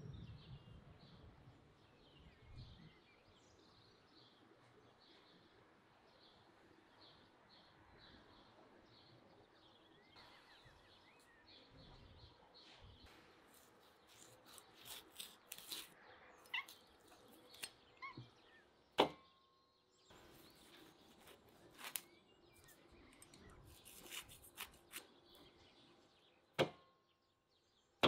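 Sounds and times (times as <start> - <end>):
bird chirping: 0.0 - 28.0
knife cutting meat: 13.5 - 16.0.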